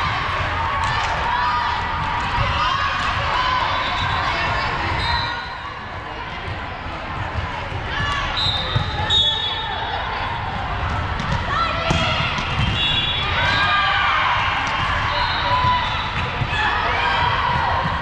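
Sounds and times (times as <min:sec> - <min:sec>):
voices echoing in a gym: 0:00.0 - 0:18.0.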